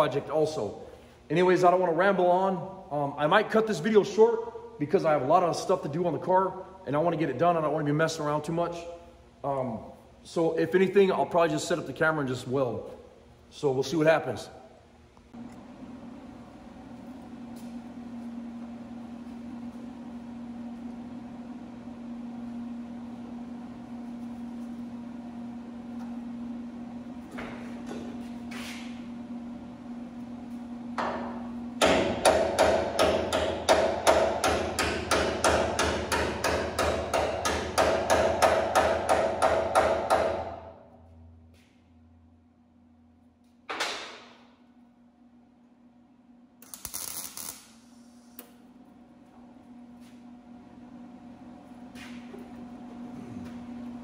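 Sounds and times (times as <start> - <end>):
welder arcing with crackling sparks: 46.6 - 48.7.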